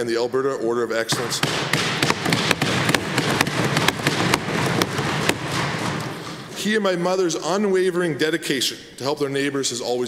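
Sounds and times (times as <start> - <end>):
people thumping wooden desks: 1.1 - 6.6.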